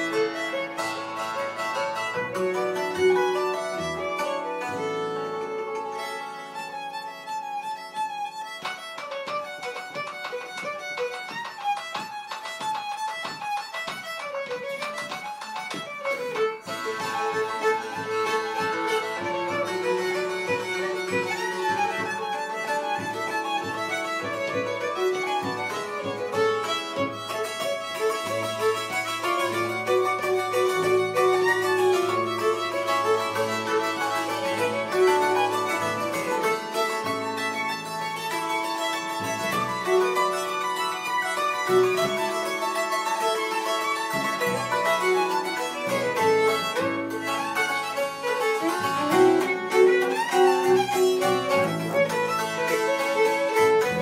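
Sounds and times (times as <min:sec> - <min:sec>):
fiddle melody: 0:00.0 - 0:54.0
hammered dulcimer notes: 0:00.0 - 0:54.0.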